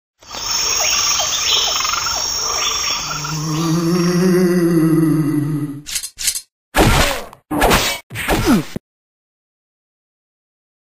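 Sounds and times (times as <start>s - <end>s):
frogs chirping: 0.2s - 4.1s
crickets chirping: 0.2s - 4.2s.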